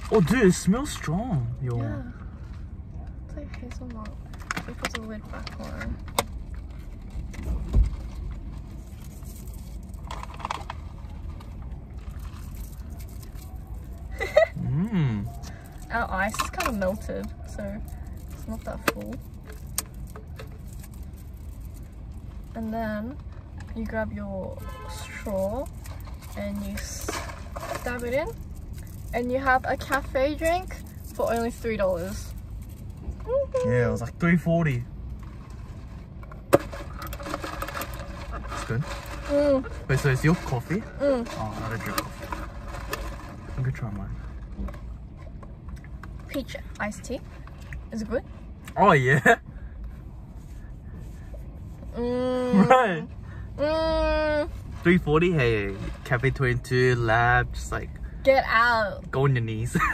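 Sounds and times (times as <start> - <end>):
car interior hum: 0.0 - 59.9
plastic rustle: 4.1 - 22.6, 24.9 - 33.2, 34.6 - 45.3.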